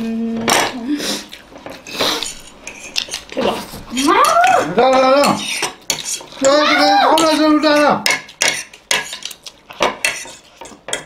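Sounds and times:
forks clinking on plates: 0:04.0 - 0:11.0.

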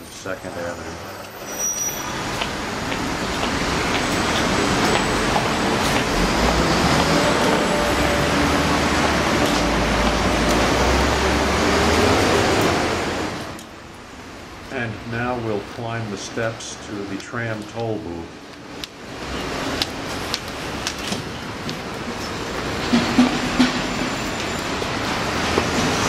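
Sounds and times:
city traffic noise: 0:00.0 - 0:26.0
heavy vehicles rumbling: 0:00.0 - 0:26.0.

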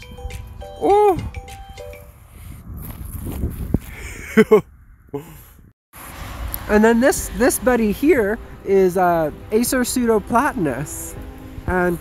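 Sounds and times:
wind rumbling on microphone: 0:00.0 - 0:12.0
footsteps on frozen grass: 0:02.1 - 0:04.1.

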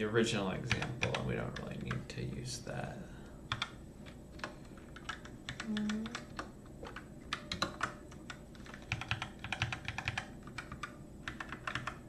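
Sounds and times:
keyboard typing: 0:00.7 - 0:02.1, 0:03.5 - 0:12.0.

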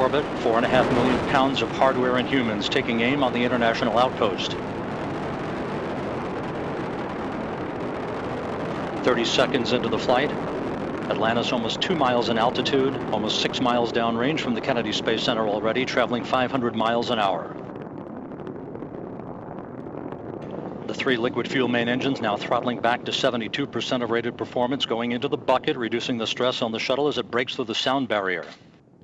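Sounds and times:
rocket engines rumbling: 0:00.0 - 0:29.0.

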